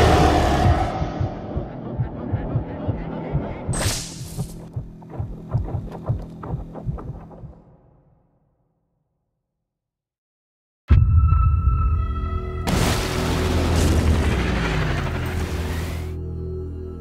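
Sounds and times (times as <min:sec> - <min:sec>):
low throbbing pulses: 0:00.0 - 0:08.1.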